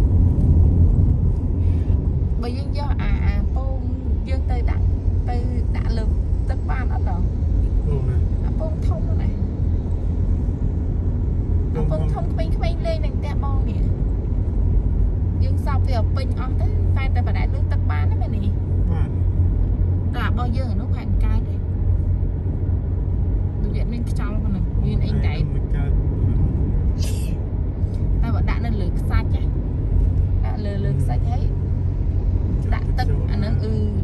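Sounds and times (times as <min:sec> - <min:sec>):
car driving on paved road: 0:00.0 - 0:34.0
people talking: 0:02.4 - 0:09.4, 0:11.8 - 0:13.9, 0:15.4 - 0:19.1, 0:20.2 - 0:21.6, 0:23.6 - 0:27.4, 0:28.2 - 0:29.5, 0:30.4 - 0:31.5, 0:32.7 - 0:34.0.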